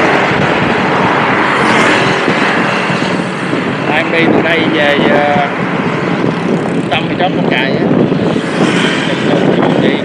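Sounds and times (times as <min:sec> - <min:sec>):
road noise: 0:00.0 - 0:10.0
rushing wind: 0:00.0 - 0:10.0.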